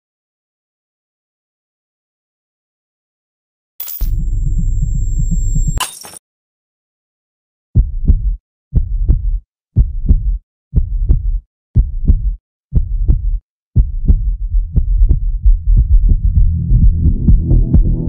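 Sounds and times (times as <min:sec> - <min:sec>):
heartbeat thumps: 0:04.1 - 0:05.8, 0:07.8 - 0:18.0.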